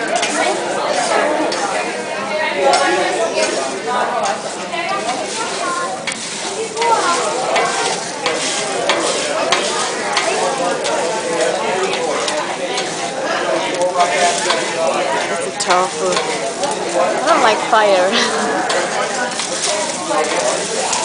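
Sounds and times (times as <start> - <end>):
metal spatula scraping and tapping: 0.0 - 1.8, 4.2 - 17.0, 18.7 - 21.0
vegetables sizzling on griddle: 0.1 - 21.0.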